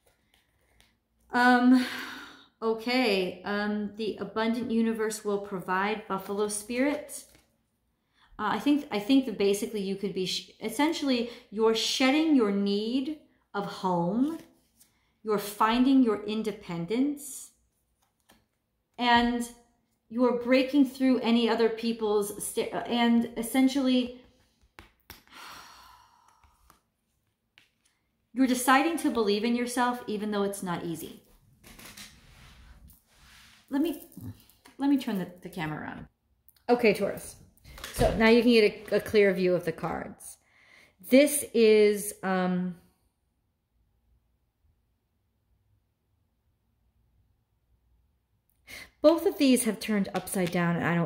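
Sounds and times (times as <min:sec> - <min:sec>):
woman speaking: 0:01.3 - 0:02.0, 0:02.6 - 0:07.3, 0:08.4 - 0:14.4, 0:15.3 - 0:17.5, 0:19.0 - 0:19.5, 0:20.1 - 0:24.2, 0:28.4 - 0:31.2, 0:33.7 - 0:40.4, 0:41.0 - 0:42.8, 0:49.0 - 0:51.0
woman drawing breath: 0:25.3 - 0:26.8.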